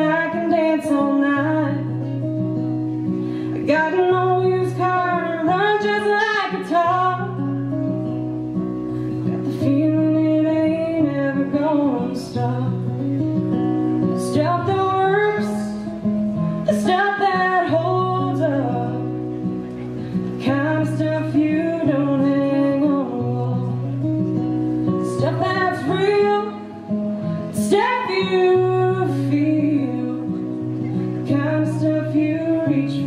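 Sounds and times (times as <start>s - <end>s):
acoustic guitar: 0.0s - 33.0s
woman singing a folk song: 0.0s - 33.0s.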